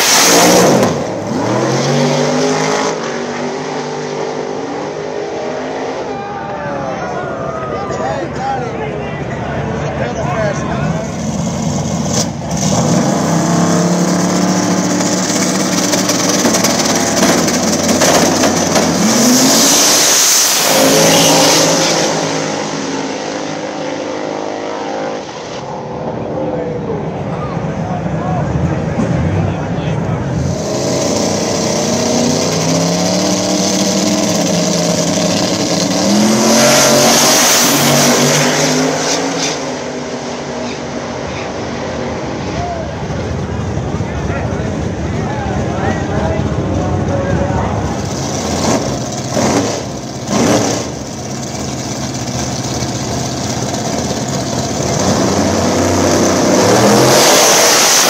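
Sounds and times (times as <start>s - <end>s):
race car engines revving: 0.0s - 58.0s.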